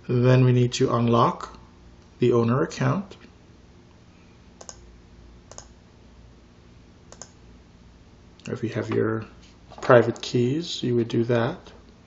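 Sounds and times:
computer mouse clicks: 4.6s - 4.8s, 5.5s - 5.7s, 7.1s - 7.4s.

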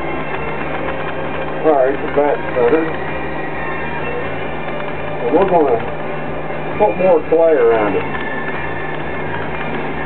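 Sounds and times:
potter's wheel humming: 0.0s - 10.0s.

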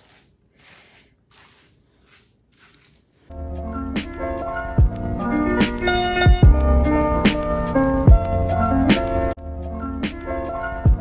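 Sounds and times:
mousse squishing in wet hair: 0.0s - 3.3s.

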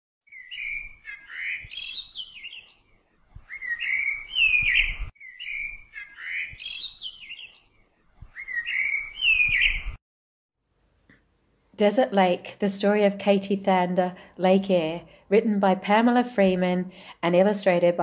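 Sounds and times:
bird whistling chirping calls: 0.3s - 2.8s, 3.4s - 7.6s, 8.3s - 10.0s.

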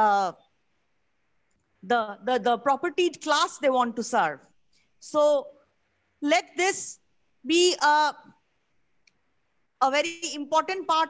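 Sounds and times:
woman speaking: 0.0s - 0.5s, 1.8s - 5.6s, 6.2s - 8.4s, 9.8s - 11.0s.

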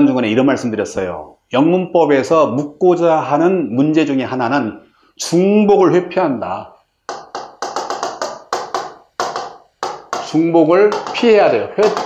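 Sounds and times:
stylus tapping on glass screen: 7.1s - 12.0s.

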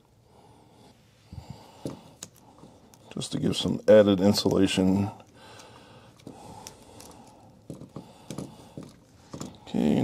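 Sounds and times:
electrical tape rustling and clicking: 1.8s - 10.0s.

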